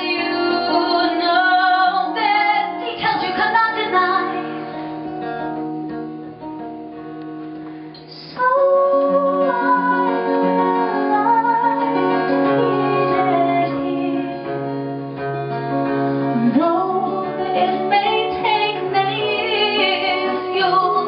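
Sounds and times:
woman singing: 0.0 - 4.6, 8.0 - 14.6, 16.3 - 21.0.

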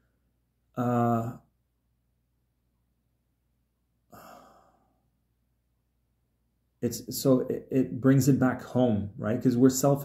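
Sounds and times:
man sighing: 0.8 - 1.4, 4.1 - 5.0.

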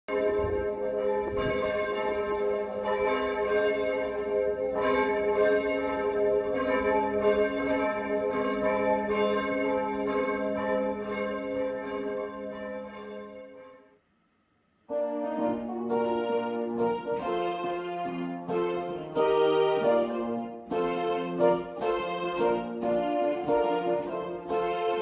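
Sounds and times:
church bells ringing: 0.1 - 13.8, 14.9 - 25.0.

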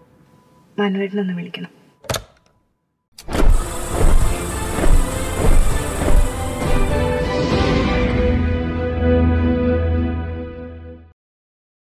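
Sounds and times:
cinematic music with deep bass: 3.3 - 11.0.

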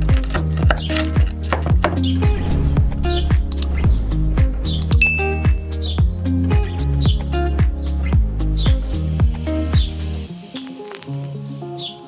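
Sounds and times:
background music with steady beat: 0.0 - 12.0.

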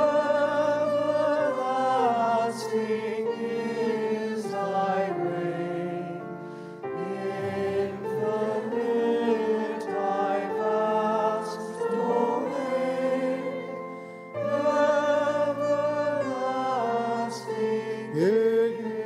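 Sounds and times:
choir singing slow chant: 0.0 - 19.0.

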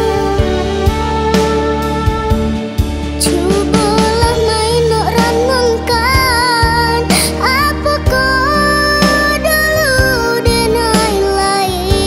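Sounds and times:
young woman singing: 0.0 - 2.5, 3.2 - 12.0
pop band with bass: 0.0 - 12.0.

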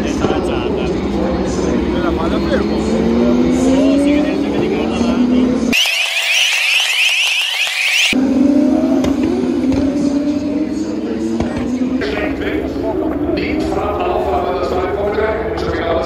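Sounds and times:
race car engines accelerating: 0.0 - 16.0
high rising whine: 5.8 - 8.2.

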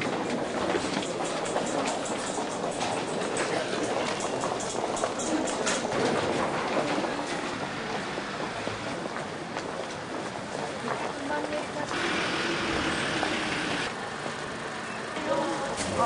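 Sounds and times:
din of people walking: 0.0 - 16.0.

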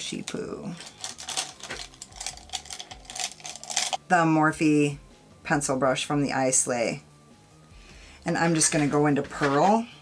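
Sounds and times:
makeup brushes clattering: 0.0 - 4.0, 8.4 - 9.9.

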